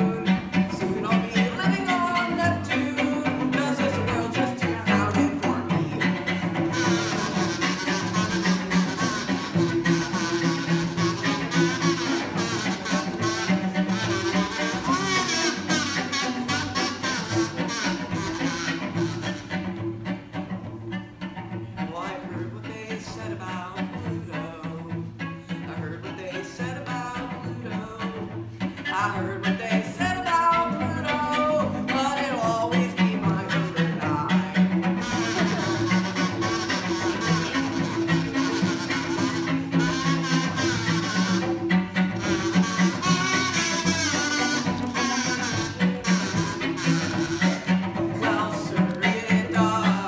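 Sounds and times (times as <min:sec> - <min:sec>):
bowed cello: 0:00.0 - 0:50.0
double bass notes: 0:00.0 - 0:50.0.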